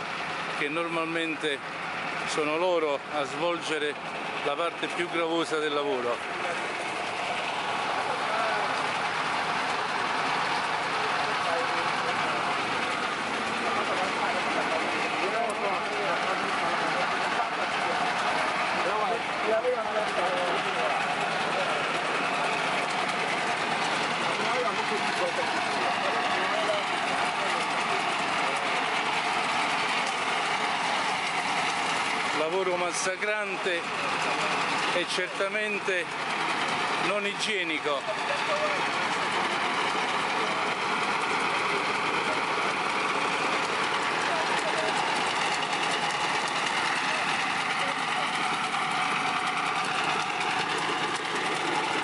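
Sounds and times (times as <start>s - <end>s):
people talking: 0.0s - 1.6s, 2.2s - 6.8s, 8.0s - 9.0s, 10.6s - 29.4s, 32.3s - 48.8s
engine running: 0.0s - 52.0s.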